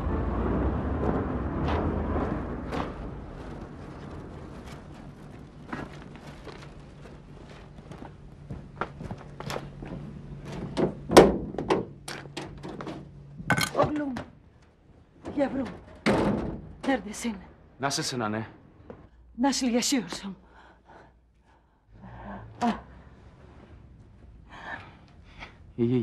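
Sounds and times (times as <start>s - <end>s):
footsteps on hard ground: 1.0s - 10.8s.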